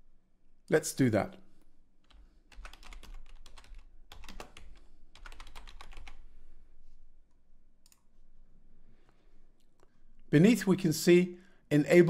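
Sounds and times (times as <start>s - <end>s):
computer keyboard typing: 2.0s - 6.2s.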